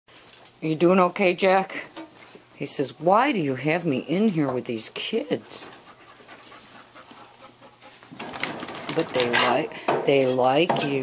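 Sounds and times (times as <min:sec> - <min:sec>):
dog panting: 0:05.0 - 0:08.4.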